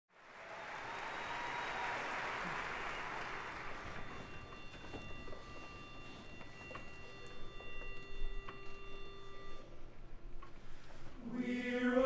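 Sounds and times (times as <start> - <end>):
audience applauding: 0.1 - 4.6.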